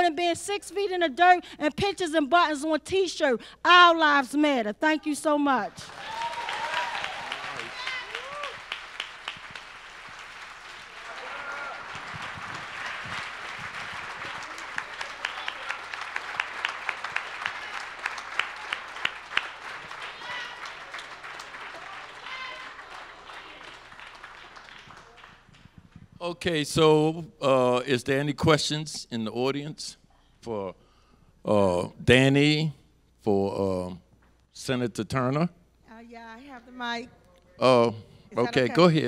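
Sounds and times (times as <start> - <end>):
audience applauding: 5.8 - 26.0.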